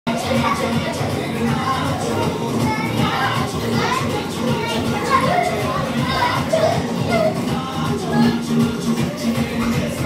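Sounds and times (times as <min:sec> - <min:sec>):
children laughing and chattering: 0:00.1 - 0:10.0
film song from tv: 0:00.1 - 0:10.0.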